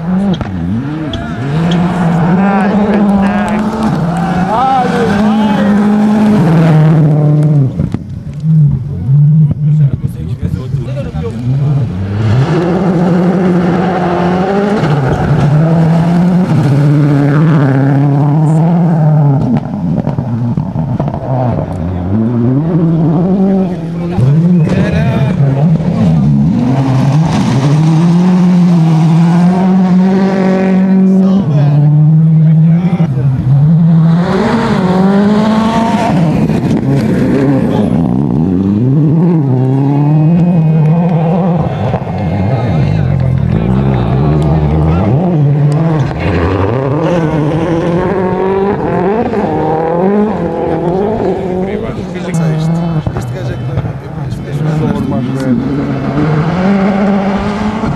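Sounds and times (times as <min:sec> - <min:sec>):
rally car engines revving: 0:00.0 - 0:57.9.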